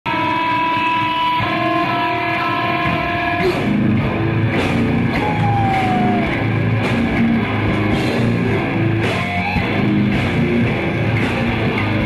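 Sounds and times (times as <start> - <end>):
heavy metal band playing live: 0.1 - 12.0.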